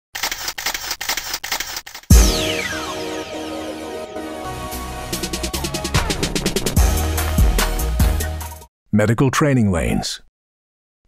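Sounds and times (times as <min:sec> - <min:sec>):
camera shutter clicking: 0:00.2 - 0:02.1.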